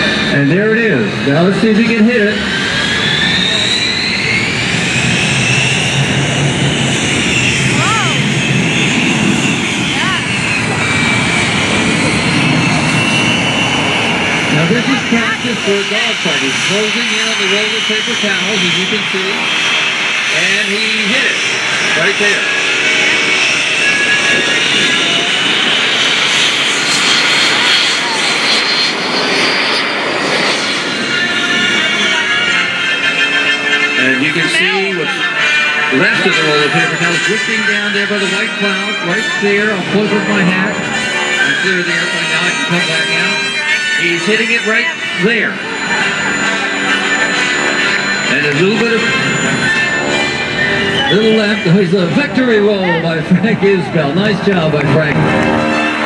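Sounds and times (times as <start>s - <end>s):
biplane engine droning overhead: 0.0s - 56.0s.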